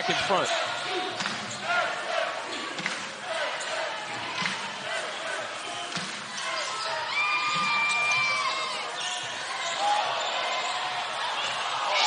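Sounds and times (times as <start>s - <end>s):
arena crowd chatter: 0.0s - 12.0s.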